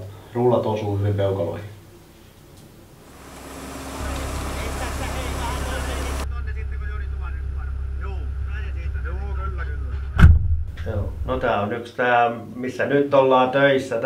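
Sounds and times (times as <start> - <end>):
diesel engine idling: 3.0 - 9.8.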